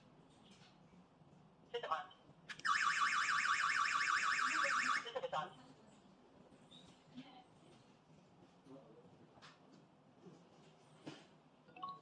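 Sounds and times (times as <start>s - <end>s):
alarm siren warbling: 2.7s - 5.1s.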